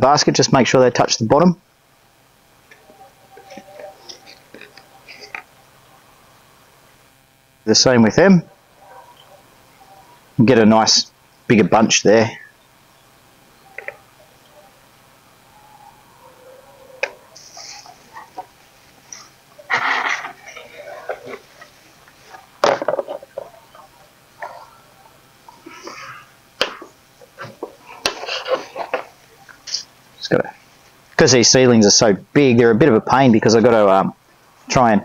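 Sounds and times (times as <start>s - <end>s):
seedling leaves rustling: 15.8s - 26.4s.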